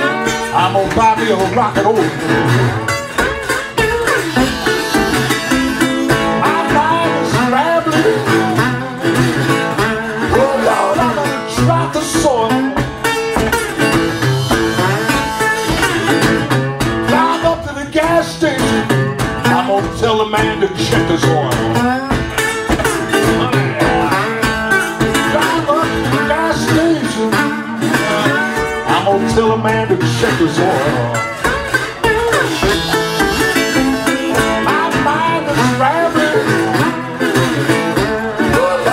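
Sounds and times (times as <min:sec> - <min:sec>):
person singing: 0:00.0 - 0:03.0, 0:03.7 - 0:16.3, 0:17.0 - 0:38.9
resonator guitar fingerstyle blues: 0:00.0 - 0:38.9.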